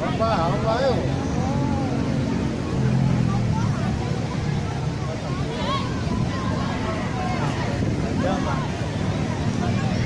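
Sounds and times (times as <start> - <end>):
voices calling out: 0.0 - 10.0.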